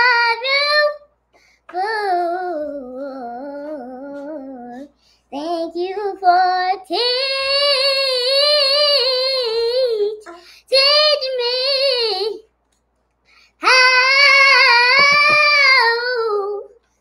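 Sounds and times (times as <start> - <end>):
girl singing: 0.0 - 1.1, 1.7 - 12.5, 13.6 - 16.8.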